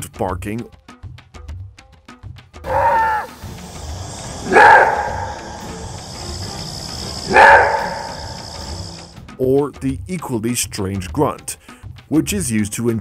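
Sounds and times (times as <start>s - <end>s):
background music: 0.0s - 13.0s
wolf roar-barking: 2.6s - 9.1s.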